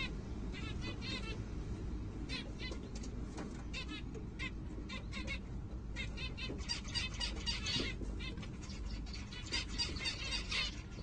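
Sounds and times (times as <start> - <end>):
nestlings chirping: 2.2 - 11.0.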